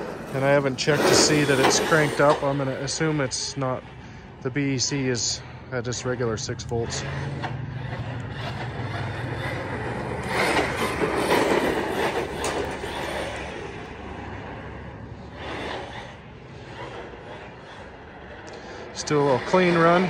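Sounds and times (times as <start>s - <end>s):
rc truck electric motor: 0.0s - 20.0s.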